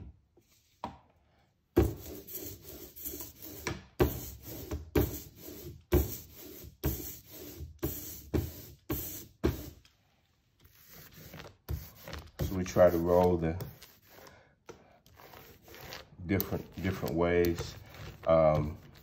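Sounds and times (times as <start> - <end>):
brayer rolling through ink: 1.8 - 9.8, 10.6 - 19.0.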